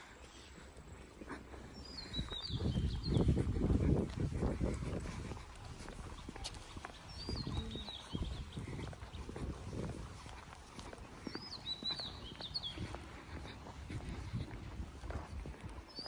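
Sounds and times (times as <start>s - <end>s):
footsteps on stone paving: 0.0s - 16.0s
small birds chirping: 0.0s - 16.0s.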